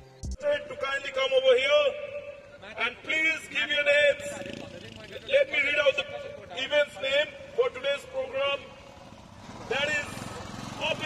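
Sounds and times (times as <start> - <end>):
man talking: 0.4 - 8.8, 9.7 - 11.0
motorcycle engines idling: 2.0 - 11.0.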